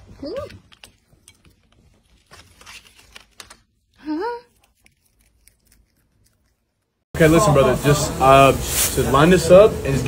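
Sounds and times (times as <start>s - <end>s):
rustling and crinkling: 0.0s - 3.8s.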